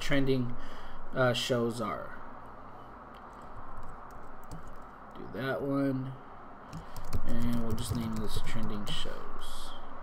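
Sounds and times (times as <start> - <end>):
computer keyboard clicking: 3.3 - 5.2, 6.7 - 8.8.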